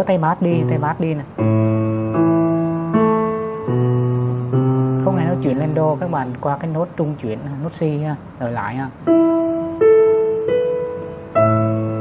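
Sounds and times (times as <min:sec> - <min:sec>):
low piano notes: 0:00.0 - 0:12.0.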